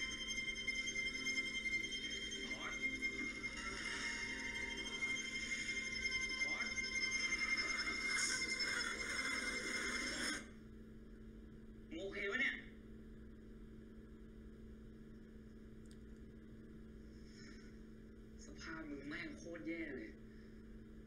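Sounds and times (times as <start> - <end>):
droning soundtrack tones: 0.0 - 10.6
steady low hum: 0.0 - 21.0.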